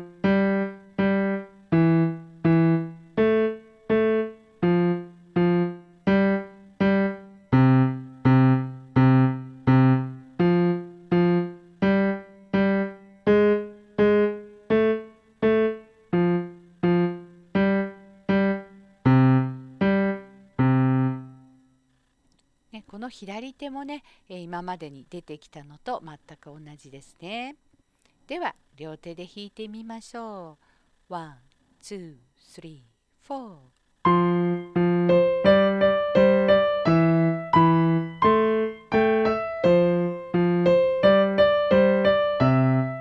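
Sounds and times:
low piano bass notes: 0.0s - 21.3s, 34.1s - 43.0s.

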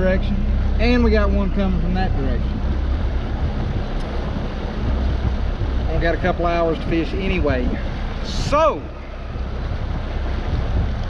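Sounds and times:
outboard motor running: 0.0s - 11.0s
water rushing from wake: 0.0s - 11.0s
wind buffeting microphone: 0.0s - 11.0s.

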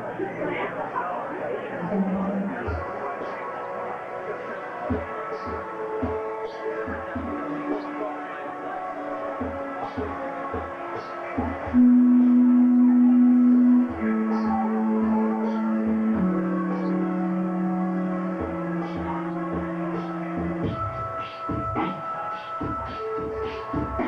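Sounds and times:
electric keyboard sustained notes: 5.8s - 24.0s.

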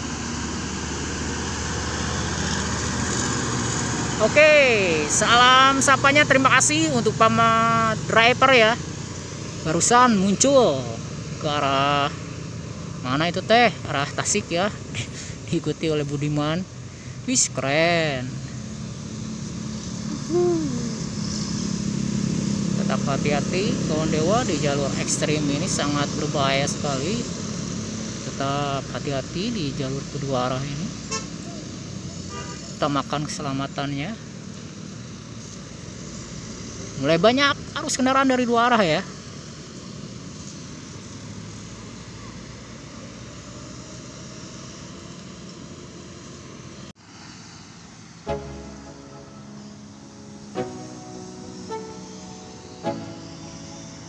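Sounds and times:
bus engine droning: 0.0s - 54.0s
motorcycles passing: 0.0s - 54.0s
road traffic passing: 0.0s - 54.0s
bus horn hoot: 31.1s - 31.4s, 32.3s - 32.8s.

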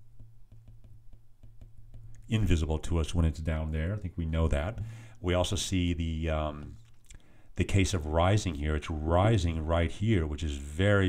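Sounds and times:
stylus tapping on glass screen: 0.0s - 2.3s.

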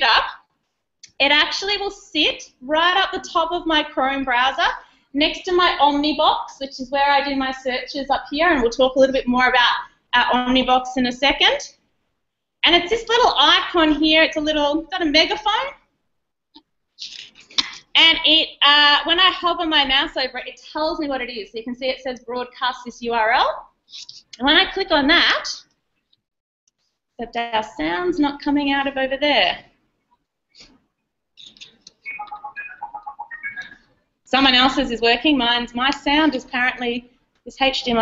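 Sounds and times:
person speaking: 31.4s - 33.8s
short electronic beeps: 31.5s - 33.8s.

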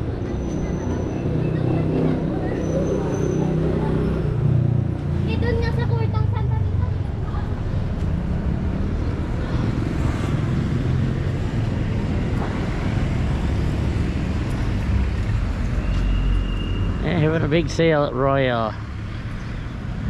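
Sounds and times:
rumble of passing vehicles: 0.0s - 20.0s.

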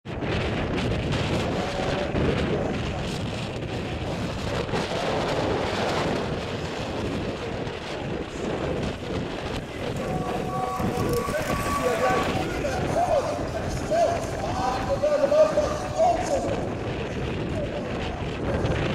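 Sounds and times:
wind buffeting microphone: 0.0s - 18.9s
faint voices: 1.2s - 18.9s.

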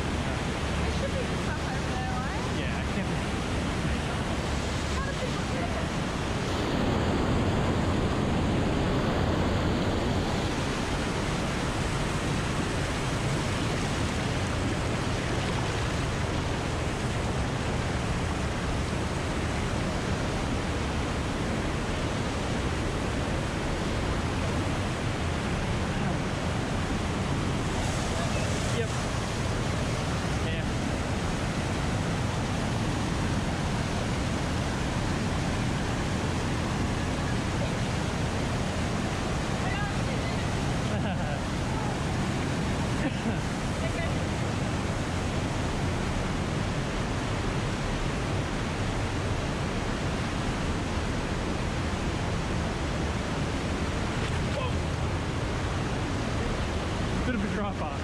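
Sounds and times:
river water rushing over rocks: 0.0s - 58.0s.

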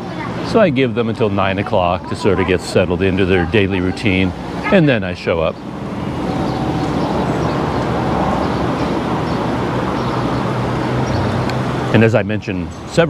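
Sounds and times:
road and wind noise: 0.0s - 13.0s
scooter engine hum: 0.0s - 13.0s.

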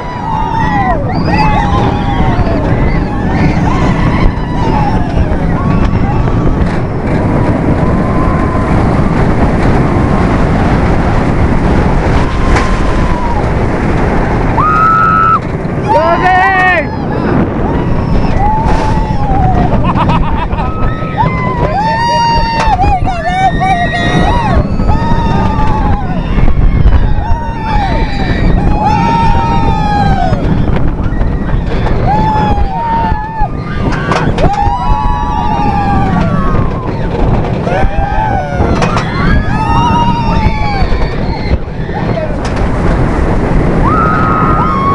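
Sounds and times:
roller coaster train rumble: 0.0s - 44.9s
wind on microphone: 0.0s - 44.9s
riders crying out: 14.4s - 43.0s.

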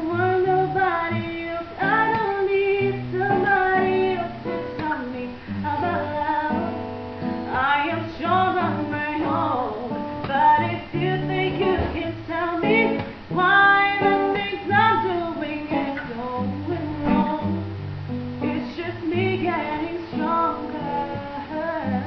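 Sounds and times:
acoustic guitar: 0.0s - 22.0s
woman singing: 0.0s - 22.0s.

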